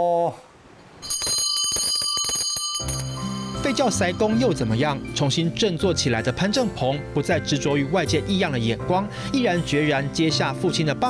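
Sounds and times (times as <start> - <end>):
hand bell ringing rapidly: 1.0 - 4.8.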